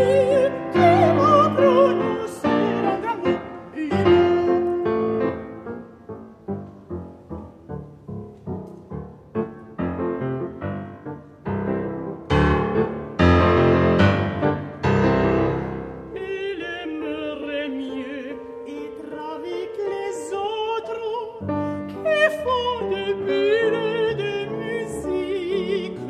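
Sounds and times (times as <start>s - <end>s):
person singing: 0.0s - 5.0s
grand piano accompaniment: 0.0s - 26.0s.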